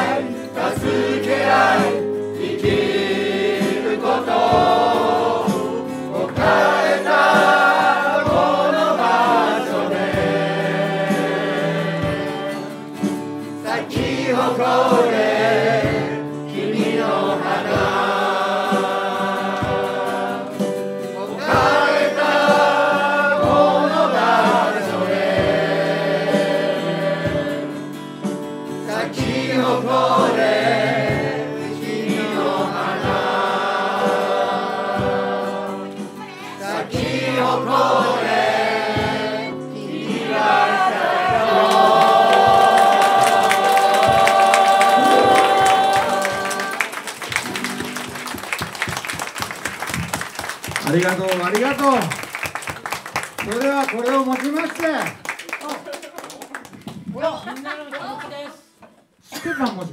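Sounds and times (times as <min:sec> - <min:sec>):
group singing in chorus: 0:00.0 - 0:48.4
acoustic guitar: 0:00.0 - 0:51.0
people clapping: 0:41.6 - 0:58.0, 0:59.6 - 0:59.9.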